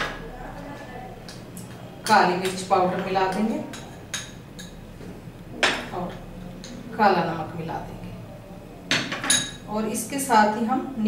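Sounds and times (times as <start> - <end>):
glass bowls clinking: 8.9 - 9.7.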